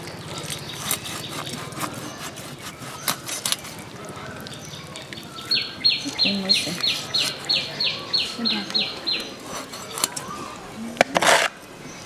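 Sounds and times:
bird chirping: 0.0 - 10.6.

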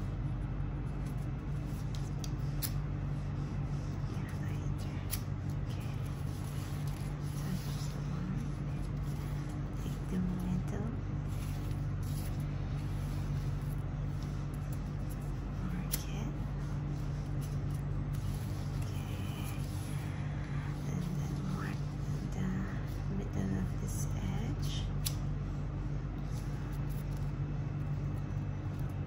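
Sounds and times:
steady low hum: 0.0 - 29.0
ribbon rustling: 0.4 - 23.8.

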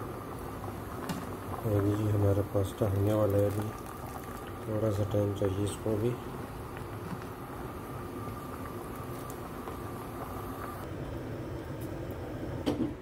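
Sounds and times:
water boiling in pot: 0.0 - 13.0.

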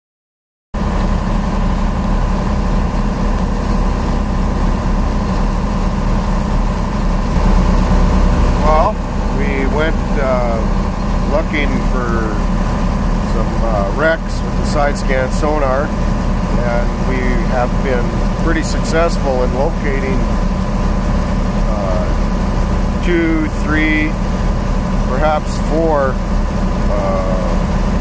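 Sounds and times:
boat engine running: 0.8 - 28.0
man talking: 8.6 - 12.5, 13.3 - 20.4, 21.7 - 22.2, 23.0 - 24.2, 25.1 - 26.2, 26.9 - 27.7.

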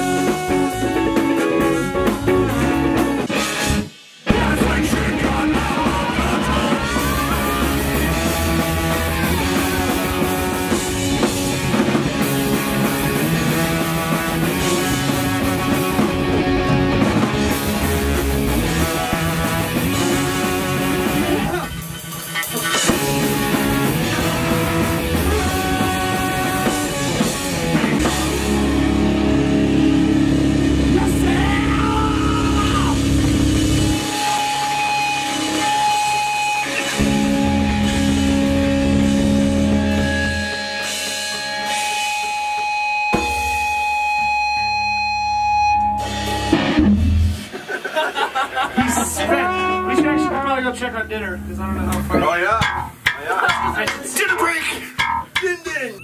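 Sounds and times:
trombone: 0.0 - 3.9, 17.7 - 21.6, 23.0 - 27.4, 49.2 - 50.6
bass guitar: 0.0 - 47.8, 48.4 - 55.8
electric guitar: 0.0 - 50.6
drum kit: 0.0 - 56.0.

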